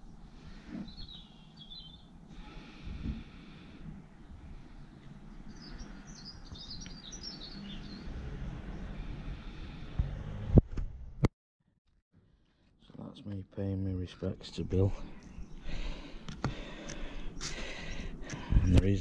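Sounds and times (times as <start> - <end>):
small birds chirping: 0.0 - 9.8, 12.8 - 19.0.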